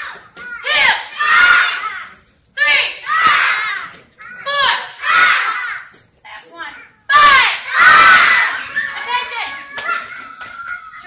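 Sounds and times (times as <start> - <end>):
children shouting: 0.0 - 6.0, 6.7 - 11.0.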